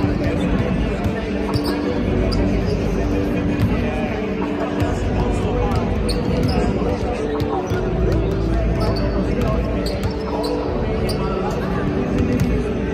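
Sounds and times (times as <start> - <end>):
background music: 0.0 - 12.9
voices: 0.0 - 12.9.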